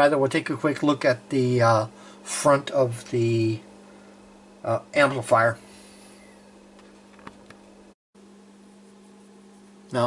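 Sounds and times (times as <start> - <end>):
amplifier hum and hiss: 0.0 - 10.0.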